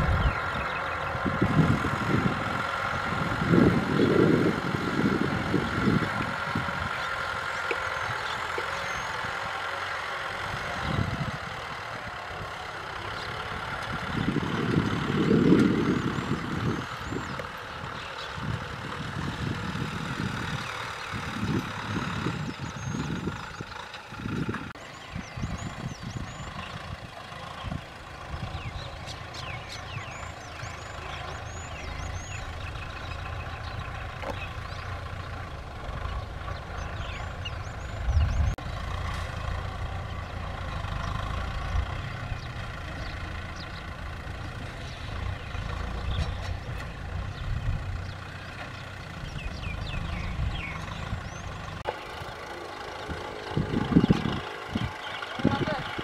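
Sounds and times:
birds chirping: 0.0 - 56.0
tractor diesel engine under load: 0.0 - 56.0.

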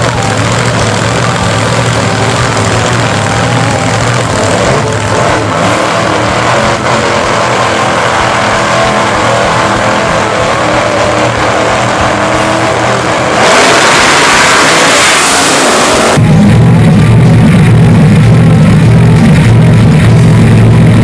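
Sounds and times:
supercharged engine running loudly: 0.0 - 21.0.

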